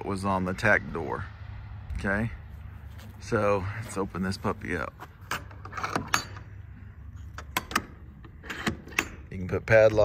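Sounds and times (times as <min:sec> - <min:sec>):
metal door latches clicking: 0:05.2 - 0:06.6, 0:07.3 - 0:09.4.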